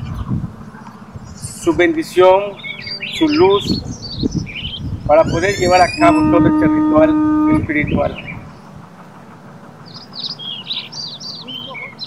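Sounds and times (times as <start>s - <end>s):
bird chirping: 0.0s - 8.8s, 9.8s - 12.0s.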